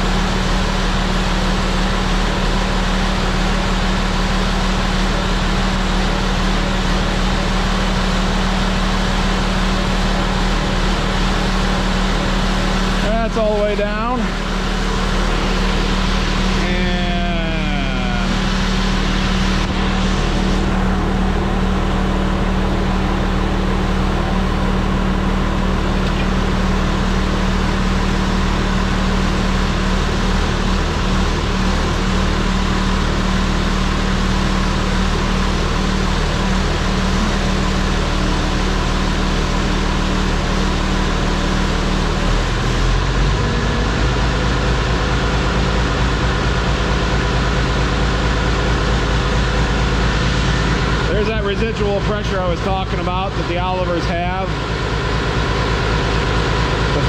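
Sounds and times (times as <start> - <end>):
hydraulic pump pumping oil: 0.0 - 57.0
tractor engine running: 0.0 - 57.0.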